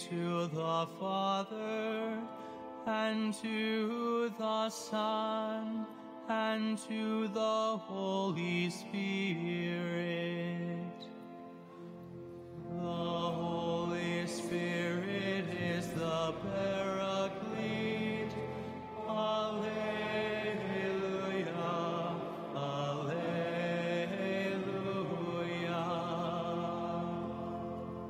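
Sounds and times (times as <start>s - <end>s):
men singing slow chant: 12.7s - 28.0s.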